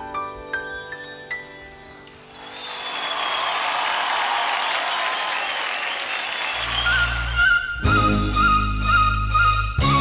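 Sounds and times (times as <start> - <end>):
studio audience applauding: 2.4 - 7.9.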